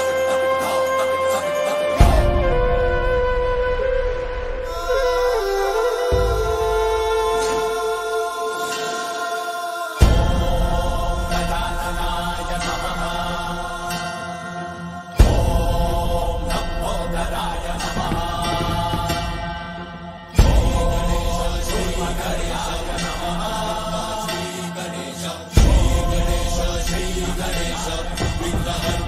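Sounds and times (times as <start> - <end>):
devotional music with chanting: 0.0 - 29.0
sustained drone tones: 0.0 - 29.0.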